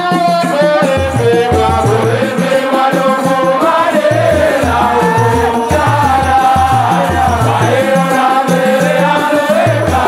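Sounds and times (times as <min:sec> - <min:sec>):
frame drums with jingles: 0:00.0 - 0:10.0
men singing together: 0:00.0 - 0:10.0.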